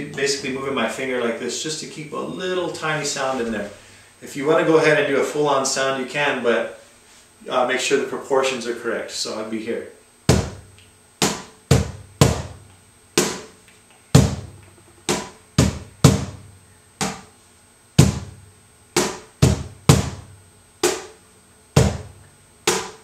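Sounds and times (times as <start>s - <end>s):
cajon bass strikes: 10.3s - 13.6s, 14.2s - 17.3s, 18.0s - 21.2s, 21.8s - 23.0s.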